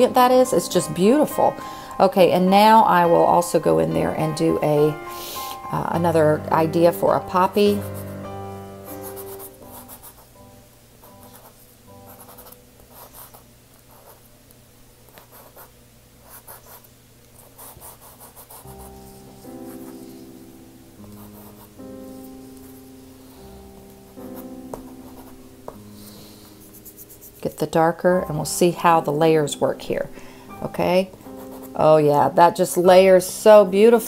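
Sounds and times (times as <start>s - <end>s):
soft background music: 0.0s - 13.4s, 17.6s - 34.0s.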